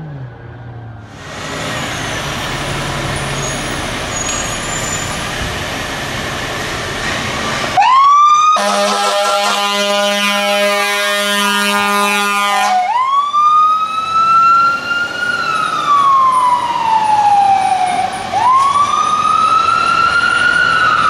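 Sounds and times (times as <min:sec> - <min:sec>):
fire truck engine: 0:00.0 - 0:21.0
siren wailing: 0:07.8 - 0:21.0
air horn blast: 0:08.6 - 0:12.9.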